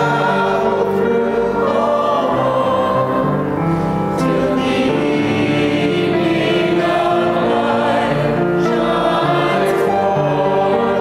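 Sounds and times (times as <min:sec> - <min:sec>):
church choir singing: 0:00.0 - 0:11.0.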